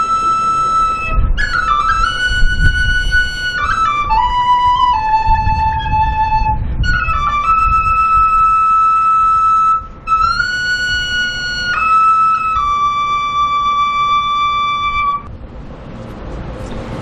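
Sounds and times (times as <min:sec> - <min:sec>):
high-pitched wind instrument: 0:00.0 - 0:15.3.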